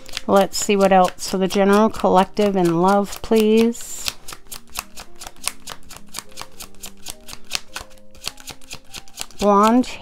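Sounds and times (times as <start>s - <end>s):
cards being shuffled: 0.0s - 9.9s
soft background music: 0.0s - 10.0s.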